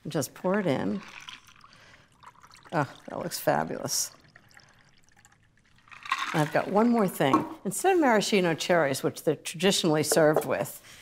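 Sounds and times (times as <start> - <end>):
liquid trickling into a glass: 0.5 - 7.0.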